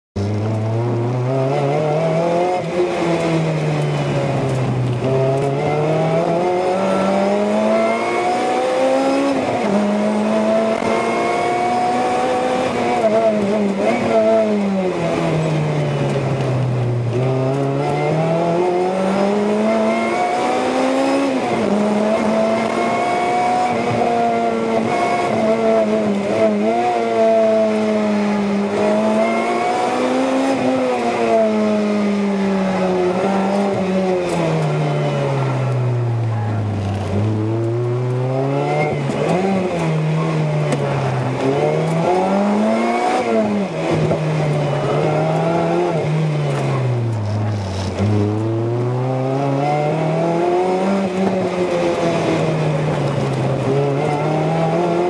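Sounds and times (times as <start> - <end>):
car engine revving: 0.2 - 55.0.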